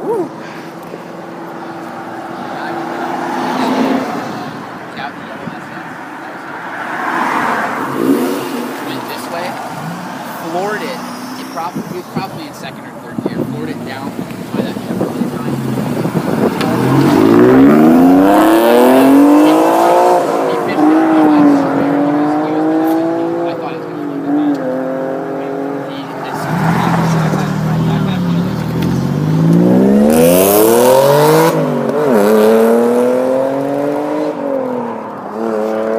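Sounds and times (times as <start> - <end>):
car engine accelerating hard: 6.2 - 35.9
second car revving through gears: 6.8 - 12.2, 13.3 - 35.9.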